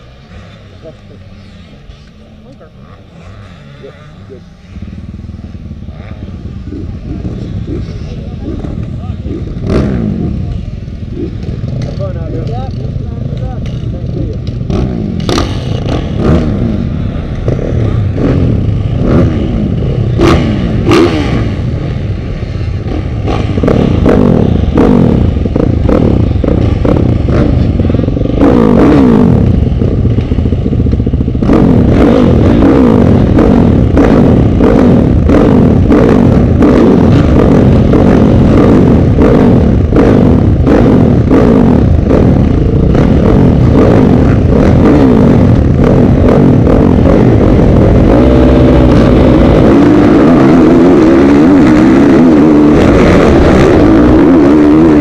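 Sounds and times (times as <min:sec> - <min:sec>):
dirt bikes revving: 0:00.0 - 0:55.0.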